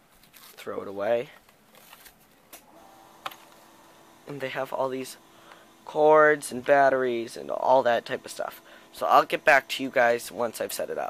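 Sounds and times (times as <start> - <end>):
faint steady hum: 1.0 - 11.0.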